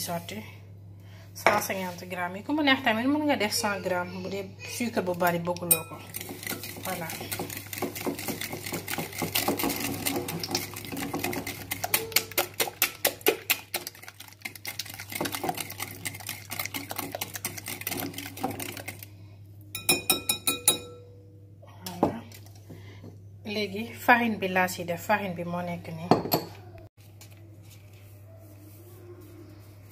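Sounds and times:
whisk clicking in glass bowl: 0:05.6 - 0:19.0
whisk tapping on bowl: 0:05.6 - 0:19.0, 0:19.8 - 0:20.9.

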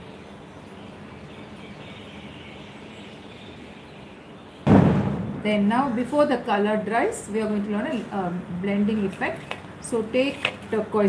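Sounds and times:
steady background noise: 0:00.0 - 0:11.0
loud thump: 0:04.7 - 0:05.6.

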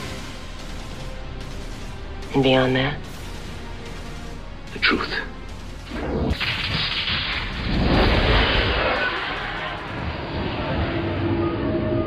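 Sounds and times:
whooshing rumbling transition effect: 0:05.9 - 0:12.0.

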